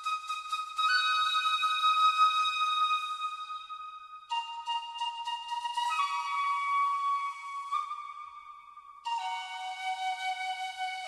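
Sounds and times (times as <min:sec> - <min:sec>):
soft flute notes: 0:00.0 - 0:11.0.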